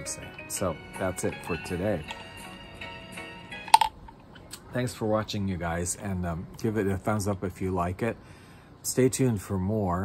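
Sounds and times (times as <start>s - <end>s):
soft background music: 0.0s - 8.2s.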